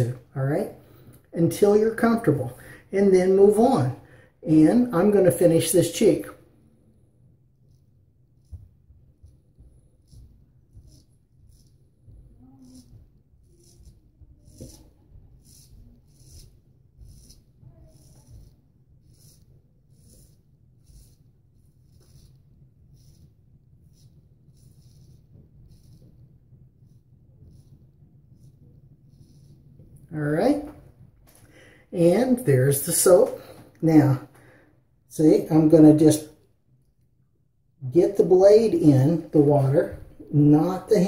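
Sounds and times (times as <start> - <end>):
razor scraping stubble: 7.5 - 31.4.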